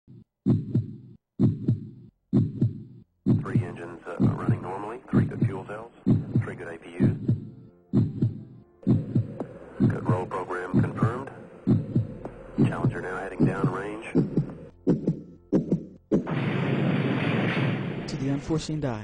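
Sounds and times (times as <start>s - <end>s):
heartbeat thumps: 0.1s - 16.3s.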